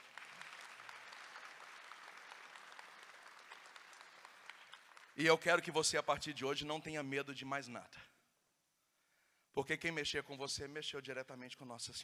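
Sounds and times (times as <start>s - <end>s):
audience applause: 0.0s - 5.2s.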